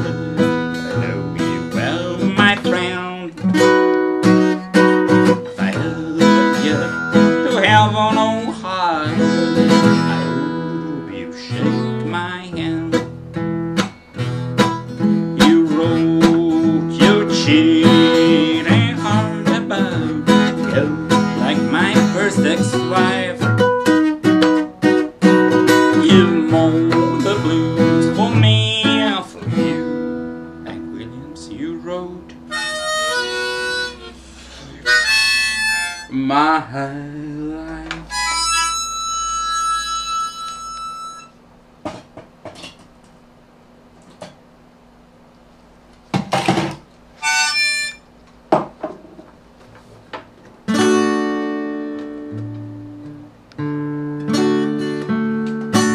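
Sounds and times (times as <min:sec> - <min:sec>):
acoustic guitar strummed: 0:00.0 - 0:42.8, 0:46.2 - 0:48.8, 0:50.6 - 0:55.9.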